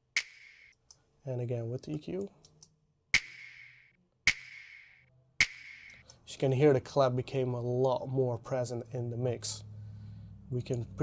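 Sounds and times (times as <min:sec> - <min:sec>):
sharp clap hits: 0:00.2 - 0:00.8, 0:03.2 - 0:06.0.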